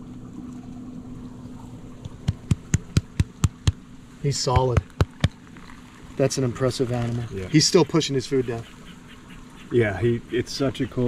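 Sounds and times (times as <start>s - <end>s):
hand patting lizard: 2.0s - 3.8s, 4.5s - 5.4s.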